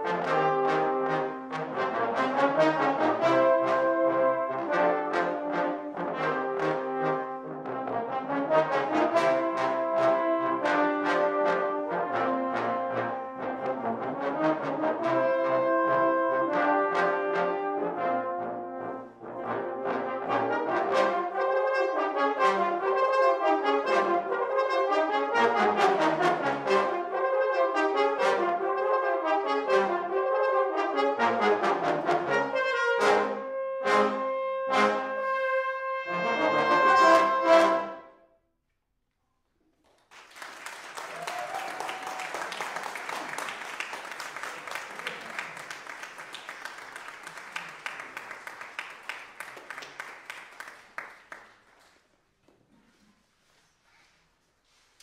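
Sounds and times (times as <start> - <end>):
trombone choir playing: 0.0 - 38.2.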